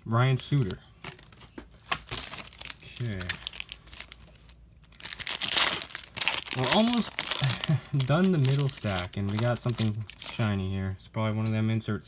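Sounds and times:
foil wrapper crinkling and tearing: 0.4 - 10.6.

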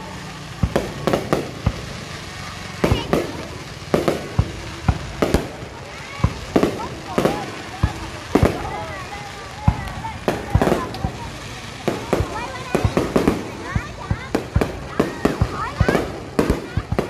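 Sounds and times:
fireworks bangs: 0.0 - 17.0.

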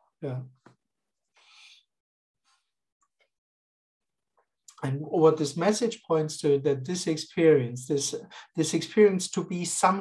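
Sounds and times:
man breathing softly: 1.3 - 1.9.

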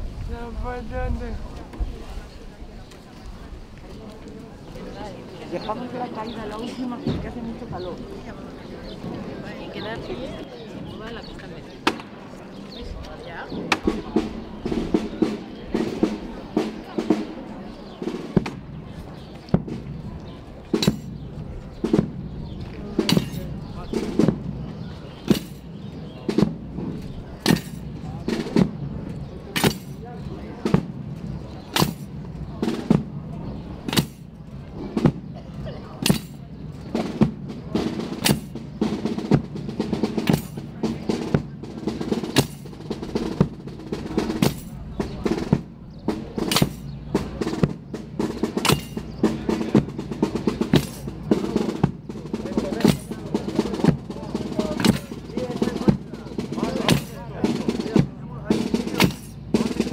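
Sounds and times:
procession drums beating a march: 5.2 - 59.9.

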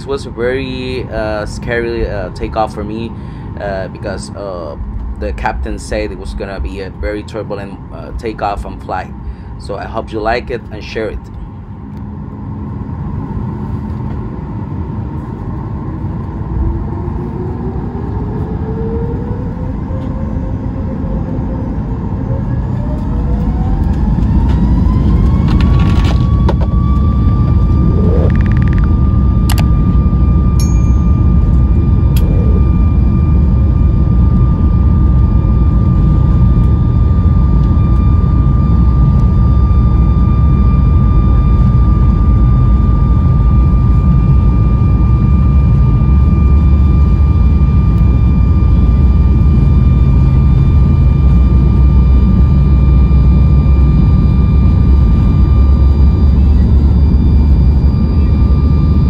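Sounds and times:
jet engine rumble: 0.0 - 59.0
jet engine whine: 0.0 - 59.0.

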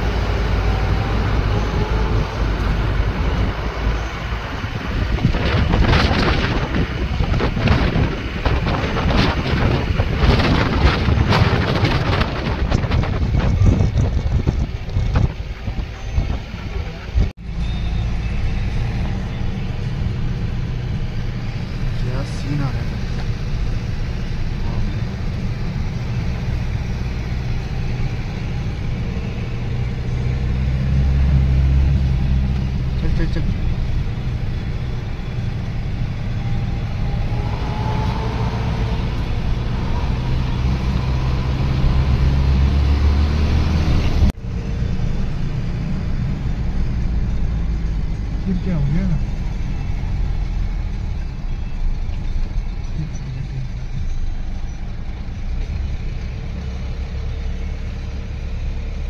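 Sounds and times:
car engine and tyre rumble: 0.0 - 59.0.

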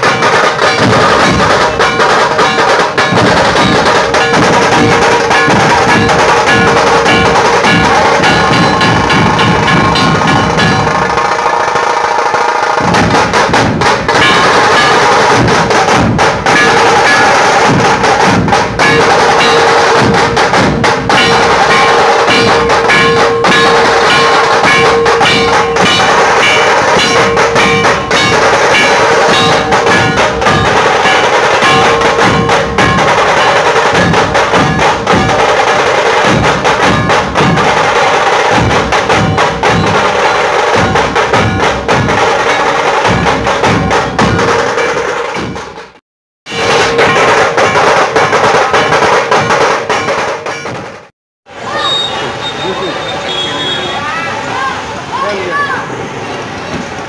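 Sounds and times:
barrel drums beating fast rhythm: 0.0 - 51.1.

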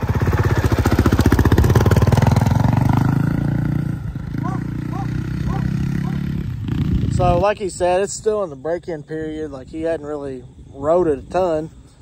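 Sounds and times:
dirt bike engine running hard: 0.0 - 7.8.

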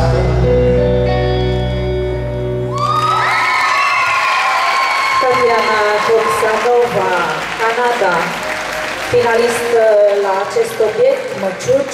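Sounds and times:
audience applauding and cheering: 2.7 - 11.9.

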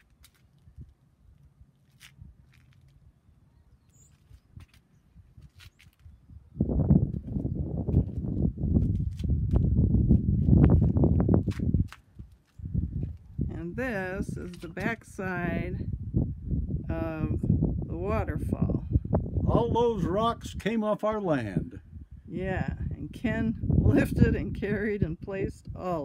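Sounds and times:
wind buffeting microphone: 0.6 - 20.8, 21.4 - 26.0.

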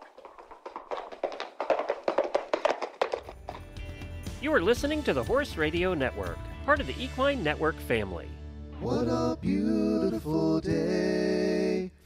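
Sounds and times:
clatter of sharp taps: 0.0 - 3.6.

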